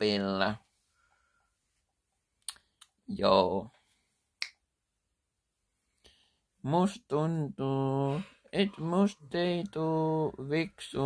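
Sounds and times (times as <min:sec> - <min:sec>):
finger snap: 0:02.4 - 0:03.0, 0:04.4 - 0:04.7.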